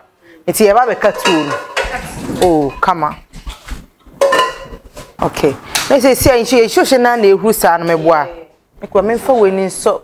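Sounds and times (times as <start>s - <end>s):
metal cookware clinking: 0.7s - 3.0s, 4.2s - 4.8s.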